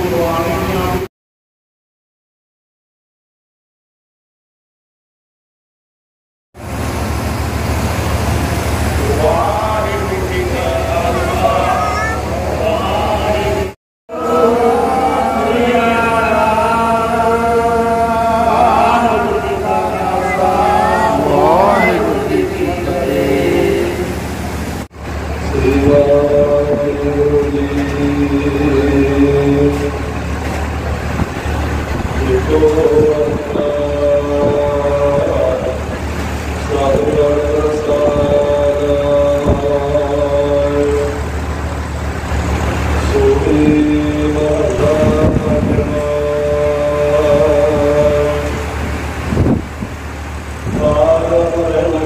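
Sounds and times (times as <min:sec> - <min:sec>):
man chanting through microphone: 0:00.0 - 0:01.1, 0:09.0 - 0:24.2, 0:25.4 - 0:30.2, 0:32.1 - 0:41.3, 0:43.0 - 0:49.0, 0:50.6 - 0:52.0
steady low hum: 0:06.6 - 0:52.0.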